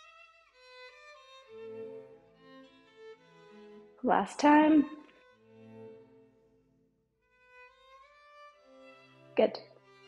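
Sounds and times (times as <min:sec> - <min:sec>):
slow string melody: 0:00.0 - 0:10.0.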